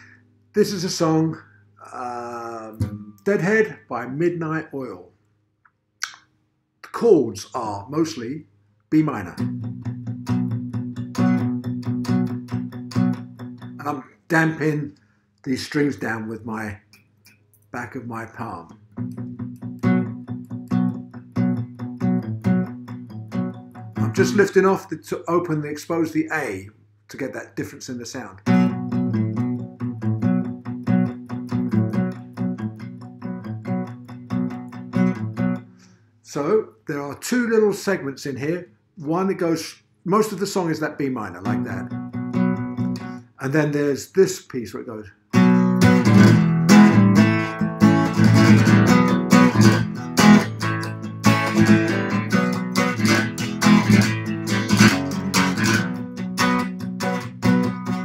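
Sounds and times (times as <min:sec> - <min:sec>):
acoustic guitar strumming: 0:02.1 - 0:03.7, 0:09.4 - 0:14.0, 0:18.7 - 0:24.8, 0:28.4 - 0:35.9, 0:41.4 - 0:43.4, 0:45.3 - 0:58.0.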